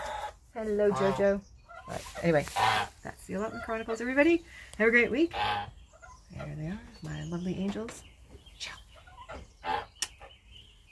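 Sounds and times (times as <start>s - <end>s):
geese calling: 0.0s - 7.4s, 9.0s - 10.3s.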